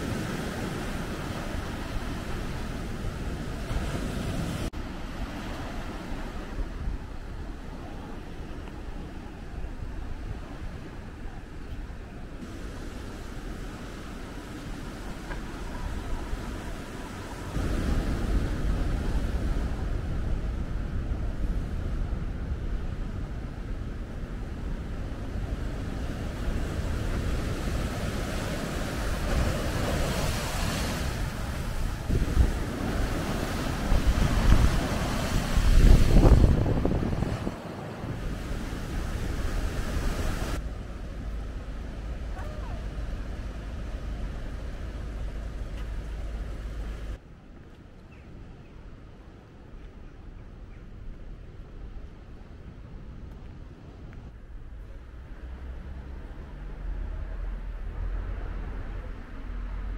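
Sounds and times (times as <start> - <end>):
sea surf breaking over rocks: 0.0 - 47.2
wind rumbling on microphone: 0.0 - 59.9.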